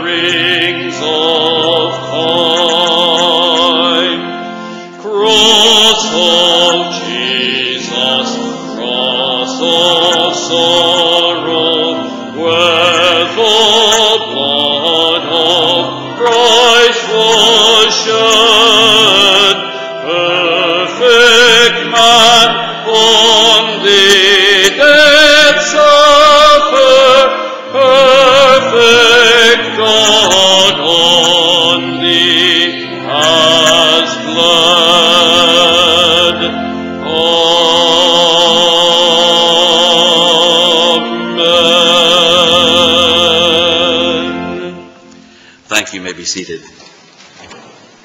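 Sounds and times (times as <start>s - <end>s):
person singing with vibrato: 0.0s - 45.8s
sustained accompaniment: 0.0s - 46.6s.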